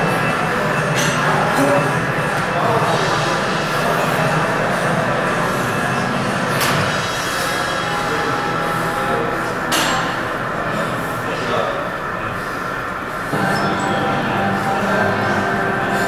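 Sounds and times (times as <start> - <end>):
indistinct voices: 0.0 - 16.0.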